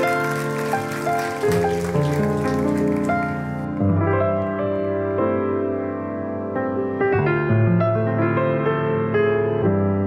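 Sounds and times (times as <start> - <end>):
piano chords and melody: 0.0 - 10.0.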